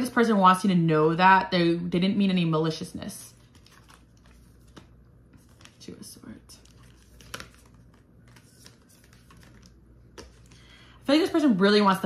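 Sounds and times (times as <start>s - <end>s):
cards clicking on wooden table: 6.6s - 10.6s.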